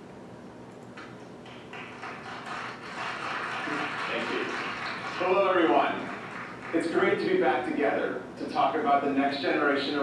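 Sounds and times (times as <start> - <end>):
audience applause over speakers: 1.6 - 7.4.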